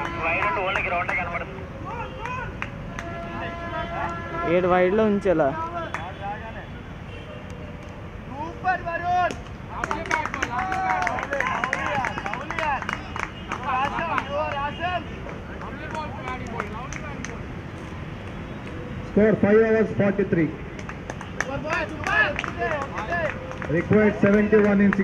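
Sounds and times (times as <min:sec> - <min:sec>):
people clapping: 0:00.0 - 0:04.3, 0:05.8 - 0:06.2, 0:09.3 - 0:17.5, 0:20.7 - 0:25.0
people shouting and chattering: 0:00.0 - 0:04.8, 0:07.4 - 0:17.7, 0:18.7 - 0:25.0.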